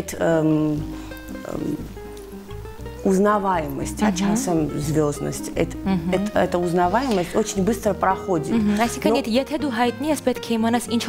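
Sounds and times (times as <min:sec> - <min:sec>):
quiet background music: 0:00.0 - 0:11.0
low bass line: 0:00.5 - 0:09.1.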